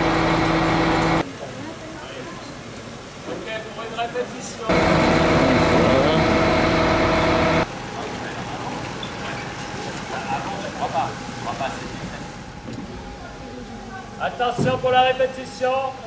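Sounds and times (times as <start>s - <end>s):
motor engine running loudly: 0.0s - 1.2s, 4.7s - 7.6s
street background noise: 0.0s - 16.0s.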